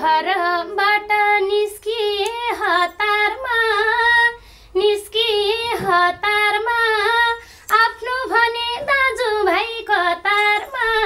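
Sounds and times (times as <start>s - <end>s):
woman singing folk song: 0.0s - 11.0s.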